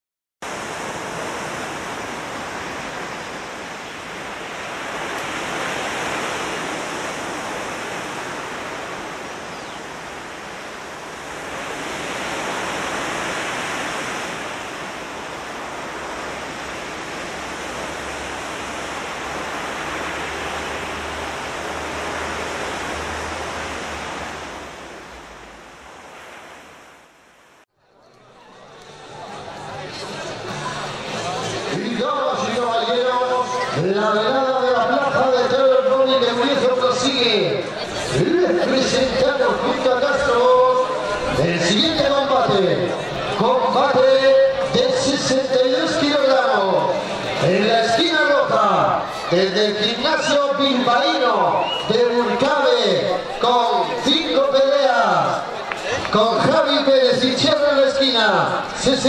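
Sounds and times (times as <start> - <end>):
ocean waves: 0.4 - 59.0.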